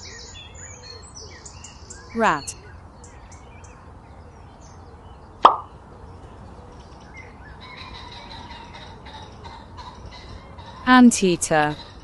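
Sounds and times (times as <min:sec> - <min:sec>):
short sharp pop: 0:05.4 - 0:05.7.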